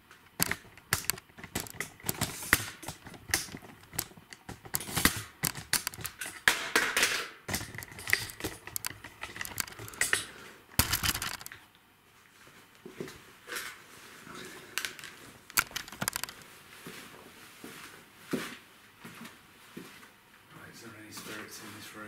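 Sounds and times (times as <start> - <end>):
camera handling noise: 0.3 - 6.3, 7.5 - 10.2, 10.8 - 11.6, 14.9 - 16.4
clicks and knocks on metal racking: 0.3 - 11.5, 14.8 - 16.4.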